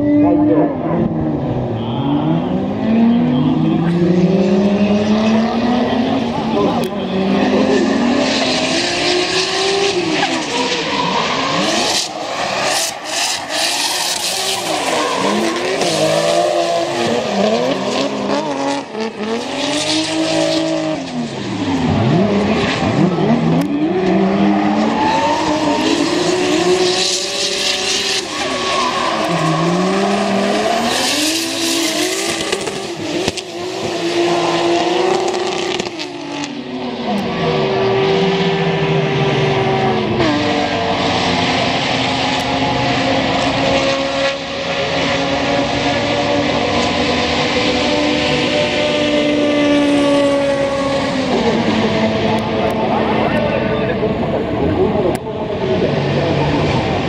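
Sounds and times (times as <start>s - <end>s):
car engines revving: 0.0s - 57.0s.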